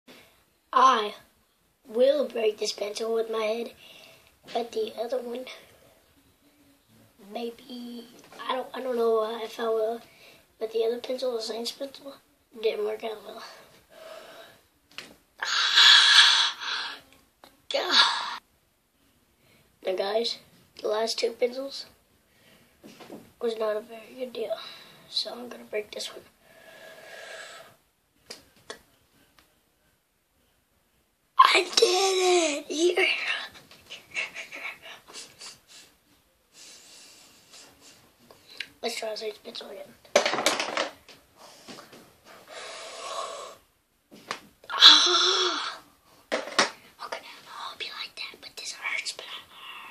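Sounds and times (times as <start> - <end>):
boy breathing hard: 13.9 - 14.6, 26.4 - 27.8, 34.1 - 38.1, 41.4 - 43.6, 44.7 - 45.9
boy yelling: 31.4 - 33.3, 44.7 - 45.8
boy crying out hoarsely: 44.7 - 45.8.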